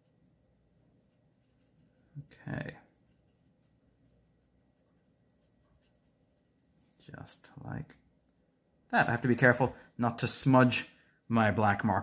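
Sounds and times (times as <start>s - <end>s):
marker scratching on paper: 0.7s - 6.6s.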